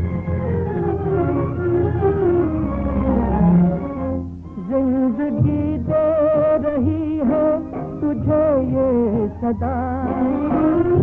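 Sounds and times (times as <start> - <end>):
orchestral film song interlude: 0.0 - 4.3.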